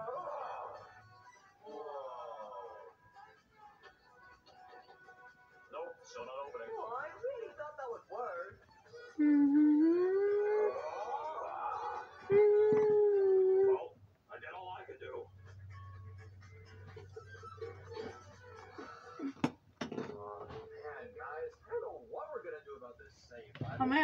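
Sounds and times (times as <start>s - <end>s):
faint voices: 8.9s - 13.9s
dog howling: 9.2s - 13.9s.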